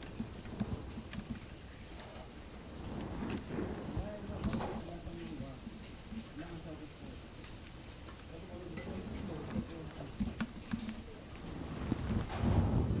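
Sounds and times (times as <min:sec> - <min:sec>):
rustle of branches: 0:00.0 - 0:13.0
faint voices: 0:01.9 - 0:12.7.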